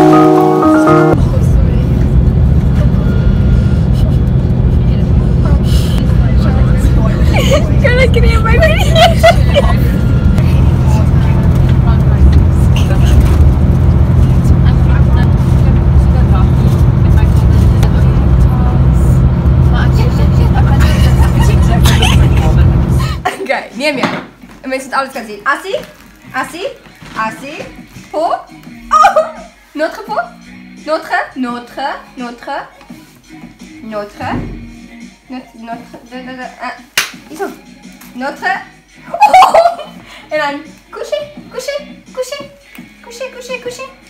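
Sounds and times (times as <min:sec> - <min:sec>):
people talking: 0:00.8 - 0:30.3
road noise: 0:01.1 - 0:23.2
bus engine rumble: 0:01.2 - 0:23.3.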